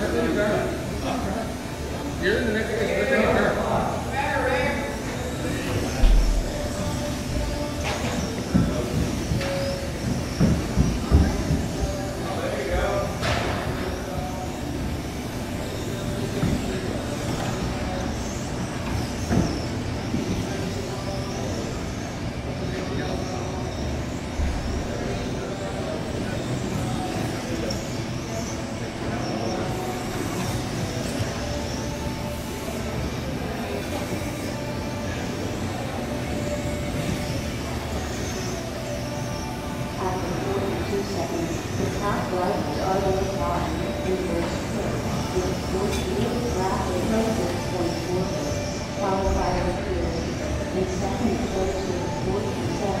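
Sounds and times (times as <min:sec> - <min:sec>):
electric rc cars whining: 0:00.0 - 0:52.8
indistinct voices: 0:00.0 - 0:53.0.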